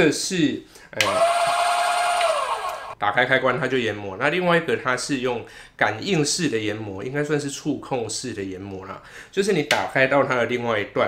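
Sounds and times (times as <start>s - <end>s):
coffee grinder motor whine: 1.0s - 3.0s.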